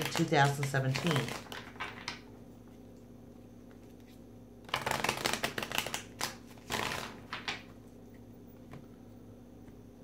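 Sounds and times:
cards shuffling: 0:03.7 - 0:07.7
cards snapping: 0:04.7 - 0:07.6.

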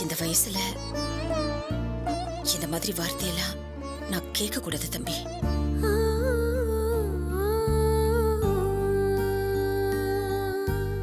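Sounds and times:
slow wordless melody: 0:00.0 - 0:11.0.

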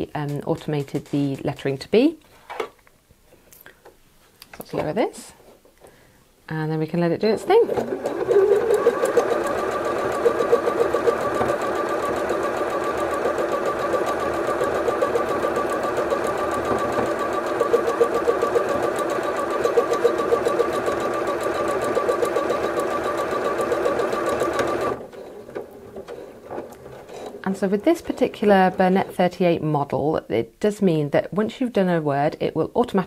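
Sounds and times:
sewing machine needle rhythm: 0:07.4 - 0:25.1, 0:27.2 - 0:29.3
sewing machine motor whine: 0:07.6 - 0:25.6.

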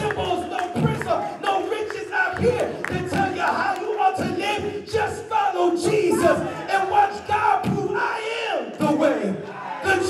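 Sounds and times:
preacher shouting into a microphone: 0:00.0 - 0:10.0.

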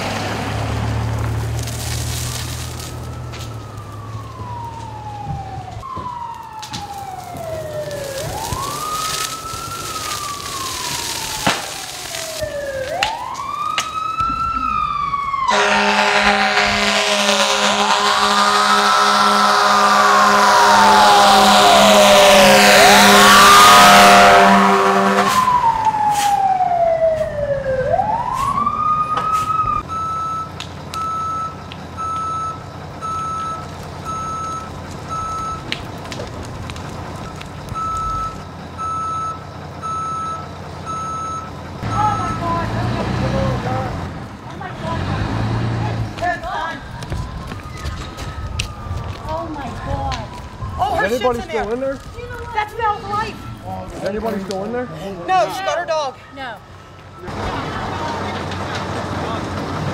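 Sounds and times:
fire engine sirens wailing: 0:00.0 - 0:59.9
deep air horn blasting: 0:15.5 - 0:26.3
reversing alarm beeping: 0:28.9 - 0:35.7, 0:37.3 - 0:42.9, 0:55.4 - 0:57.5.

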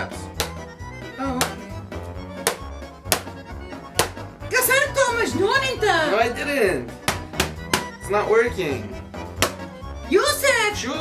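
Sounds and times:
background music: 0:00.0 - 0:11.0
hammer knocking on plastic lid: 0:07.1 - 0:07.9.

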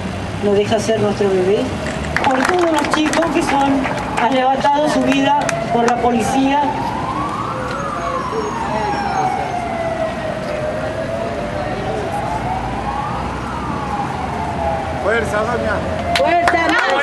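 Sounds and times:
emergency siren wailing: 0:02.2 - 0:17.0.

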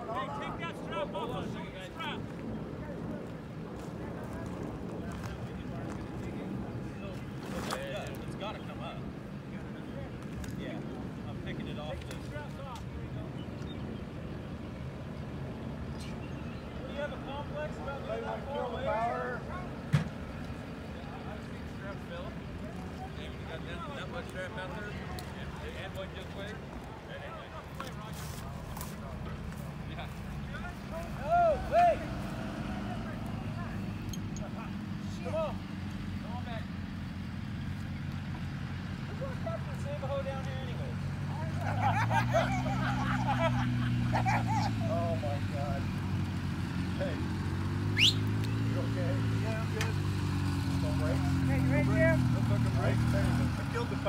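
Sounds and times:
truck engine running under load: 0:28.6 - 0:54.0
people shouting: 0:31.1 - 0:33.5.

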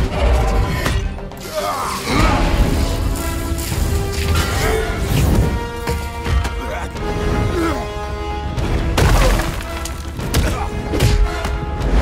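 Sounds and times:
film score: 0:00.0 - 0:12.0.

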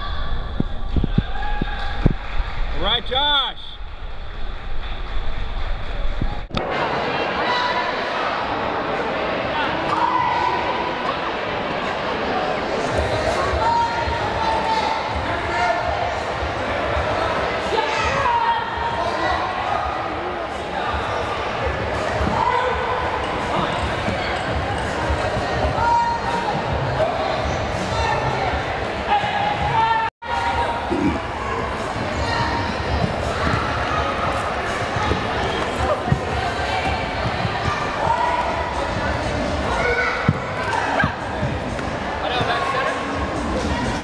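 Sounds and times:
many voices talking and calling: 0:05.9 - 0:44.0.

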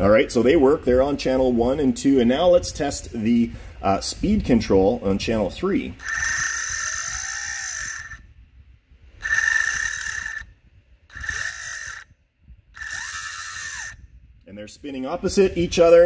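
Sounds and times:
electric motors whining: 0:06.0 - 0:08.2, 0:09.2 - 0:10.5, 0:11.1 - 0:12.1, 0:12.8 - 0:14.0.

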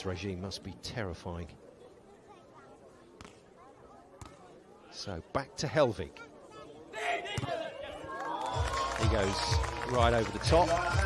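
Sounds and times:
faint crowd murmur: 0:00.0 - 0:11.0
hand slapping volleyball: 0:04.2 - 0:04.4.

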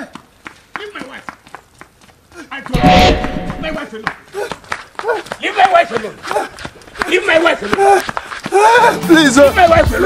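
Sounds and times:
footsteps running on dirt: 0:00.0 - 0:10.0
loud burst: 0:02.8 - 0:03.8
people shouting: 0:07.7 - 0:09.1.

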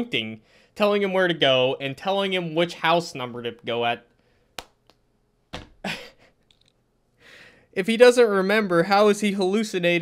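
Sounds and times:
man laughing breathily: 0:05.8 - 0:06.4.

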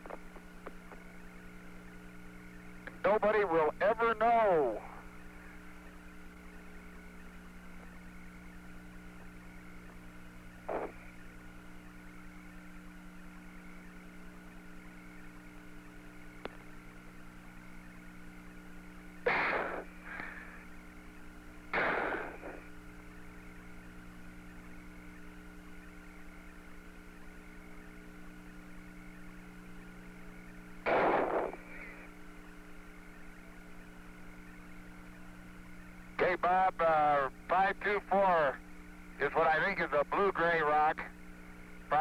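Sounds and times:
radio hum with fixed tones: 0:00.0 - 0:42.0
voice over radio link: 0:03.0 - 0:05.1, 0:10.7 - 0:11.0, 0:36.2 - 0:38.6, 0:39.2 - 0:41.2
short noise bursts: 0:10.6 - 0:11.2, 0:19.2 - 0:20.6, 0:21.7 - 0:22.8, 0:30.8 - 0:32.2.

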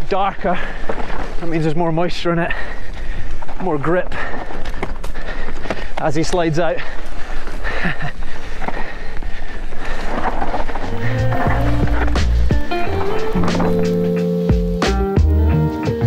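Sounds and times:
tyre and wind noise: 0:00.0 - 0:14.8
background music with bass: 0:11.0 - 0:16.0
bike knocks: 0:11.2 - 0:14.1.

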